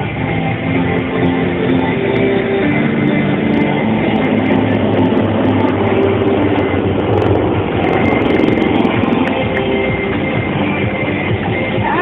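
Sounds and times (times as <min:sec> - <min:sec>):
helicopters flying overhead: 0:00.1 - 0:11.5.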